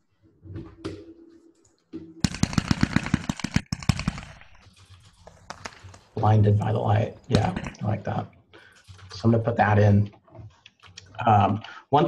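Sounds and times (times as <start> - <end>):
firework cake sharp reports: 5.6 - 8.2.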